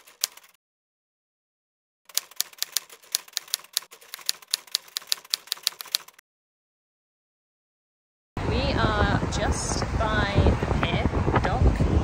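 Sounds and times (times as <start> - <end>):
typewriter keystrokes: 0.0 - 0.6, 2.1 - 6.2.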